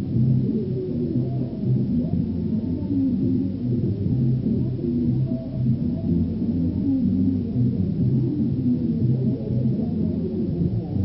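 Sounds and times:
muffled bass-heavy music: 0:00.0 - 0:11.0.

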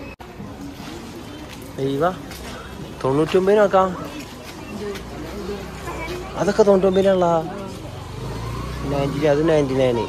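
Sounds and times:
vehicle engine humming: 0:04.5 - 0:10.0.

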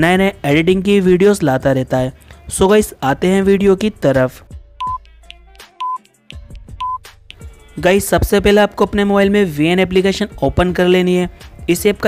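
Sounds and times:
soft background music: 0:00.0 - 0:12.0
short high beeps: 0:04.8 - 0:05.0, 0:06.8 - 0:07.0.

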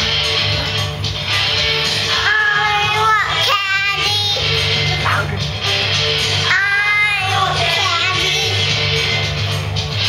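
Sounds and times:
guitar: 0:00.0 - 0:10.0
steady bass line: 0:00.0 - 0:10.0
person singing: 0:02.0 - 0:05.4, 0:06.4 - 0:08.7.

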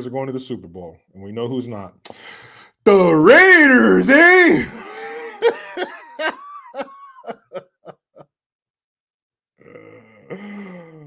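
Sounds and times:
man laughing: 0:03.3 - 0:08.2.

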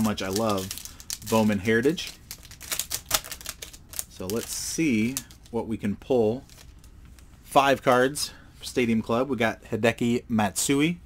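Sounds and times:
foil wrapper crinkling and tearing: 0:00.0 - 0:05.6.

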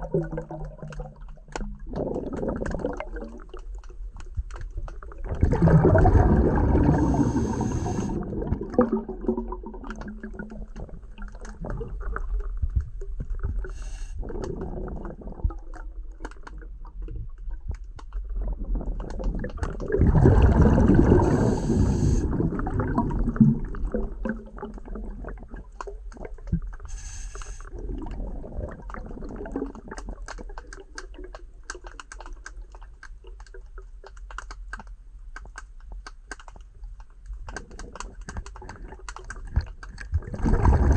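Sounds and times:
rush of bubbling: 0:00.0 - 0:32.2, 0:37.5 - 0:40.9
underwater gurgling rumble: 0:00.0 - 0:34.1, 0:36.8 - 0:40.9
small sharp clicks: 0:29.9 - 0:40.1.

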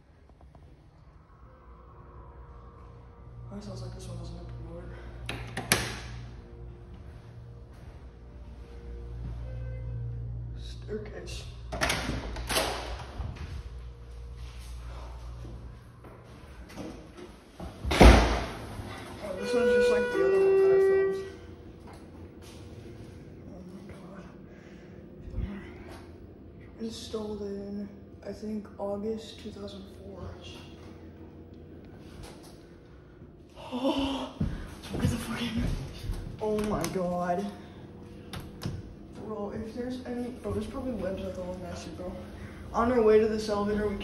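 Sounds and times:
elevator running hum: 0:00.0 - 0:44.0
faint steady higher tones: 0:06.3 - 0:11.6, 0:18.9 - 0:33.8
heavy door slamming: 0:17.8 - 0:18.7
elevator two-tone chime: 0:19.2 - 0:21.4.

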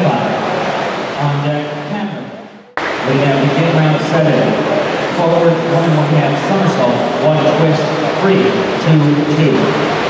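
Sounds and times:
man announcing in echoing hall: 0:00.0 - 0:10.0.

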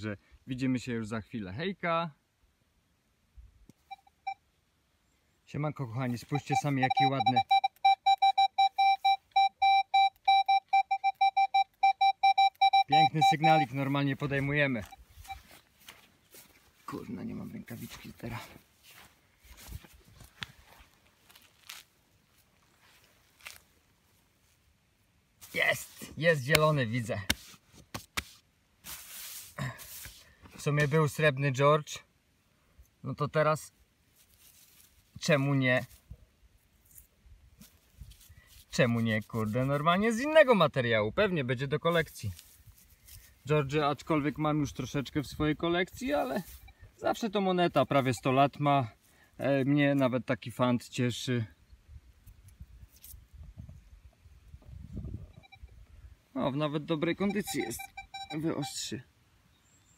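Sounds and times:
metal detector beeping rapidly: 0:03.8 - 0:04.4, 0:06.2 - 0:15.6, 0:45.9 - 0:48.6, 0:55.2 - 0:55.7, 0:57.0 - 0:58.9
rustles and knocks in soil: 0:13.6 - 0:24.7, 0:25.3 - 0:31.2, 0:34.0 - 0:40.5, 0:41.8 - 0:46.6, 0:52.1 - 0:54.8.

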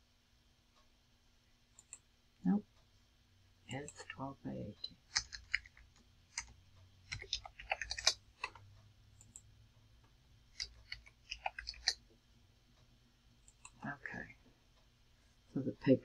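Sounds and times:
keyboard and mouse clicks: 0:01.8 - 0:02.0, 0:05.0 - 0:09.5, 0:10.5 - 0:12.0, 0:13.4 - 0:13.8.

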